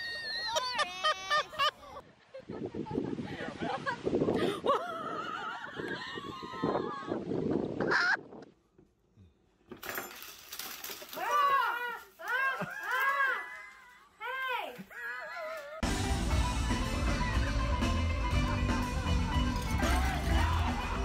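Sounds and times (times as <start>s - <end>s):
woman squealing excitedly: 0.0s - 1.7s, 5.2s - 7.2s, 11.2s - 15.8s.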